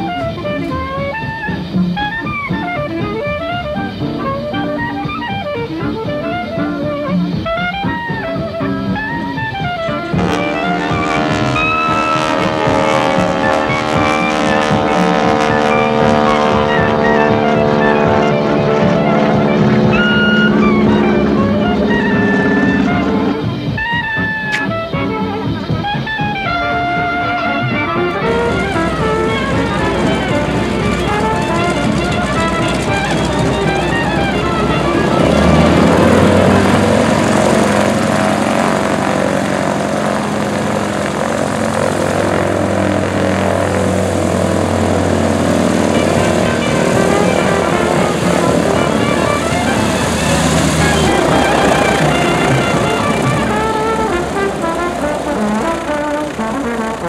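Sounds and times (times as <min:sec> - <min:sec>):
background music: 0:00.0 - 0:57.0
propeller plane engine: 0:00.0 - 0:57.0.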